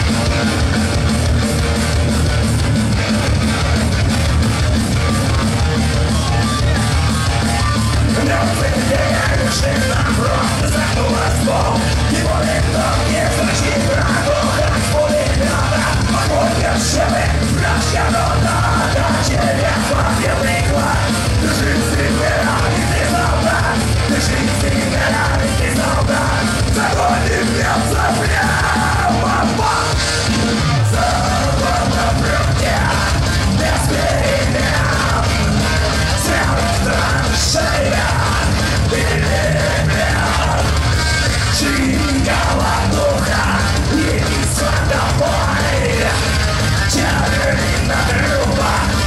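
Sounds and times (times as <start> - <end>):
electric guitar: 0.0 - 49.0
punk rock band playing: 0.0 - 49.0
person shouting lead vocal: 6.1 - 30.0, 36.1 - 40.8, 41.5 - 49.0.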